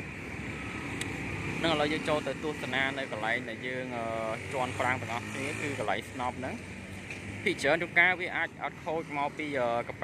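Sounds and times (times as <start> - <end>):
motorbikes passing: 0.0 - 10.0.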